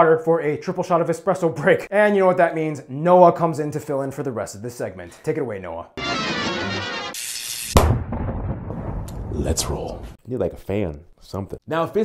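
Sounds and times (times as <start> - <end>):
heavy boom hit: 7.8 - 9.6.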